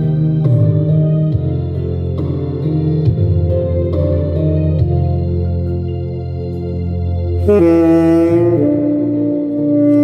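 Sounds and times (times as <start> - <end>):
slow pop ballad instrumental: 0.0 - 10.0.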